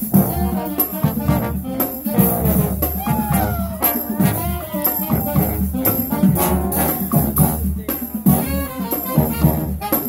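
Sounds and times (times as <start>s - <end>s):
brass instruments playing: 0.0s - 10.0s
marching drums: 0.0s - 10.0s.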